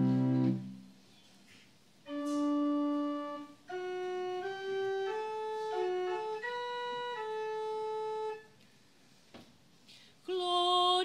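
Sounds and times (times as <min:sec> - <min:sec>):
church organ chord: 0:02.1 - 0:08.4.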